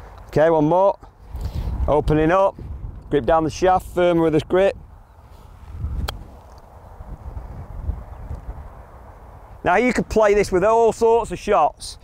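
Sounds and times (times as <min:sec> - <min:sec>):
wind rumble on microphone: 0:01.0 - 0:12.0.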